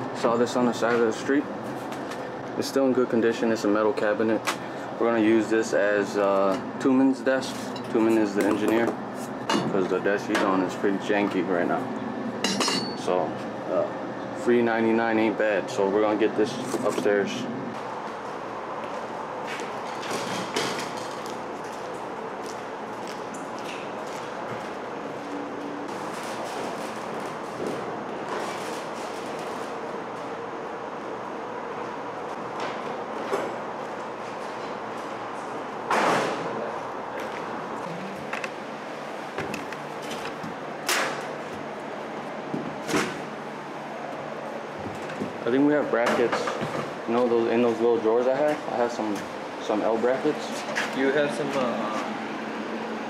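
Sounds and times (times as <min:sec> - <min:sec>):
steady background hum: 0:00.0 - 0:53.0.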